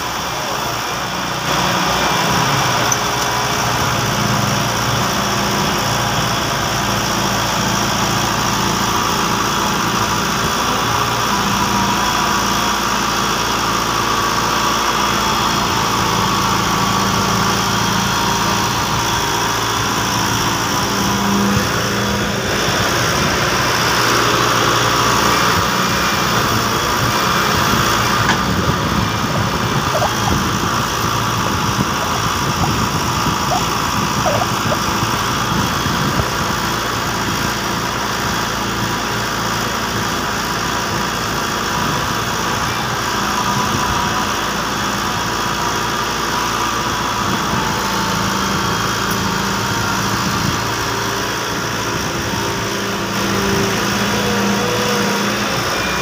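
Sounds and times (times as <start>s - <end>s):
excavator diesel engine running: 0.0s - 56.0s.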